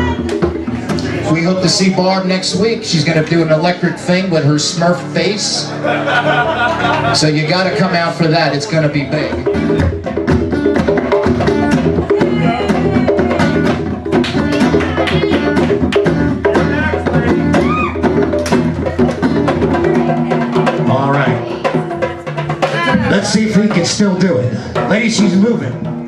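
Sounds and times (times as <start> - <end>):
drum and hand percussion beat: 0.0 - 26.0
live band playing: 0.0 - 26.0.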